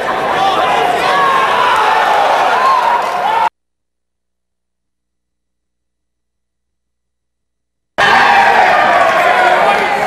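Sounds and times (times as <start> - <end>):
spectators shouting and cheering: 0.0 - 3.5, 8.0 - 10.0.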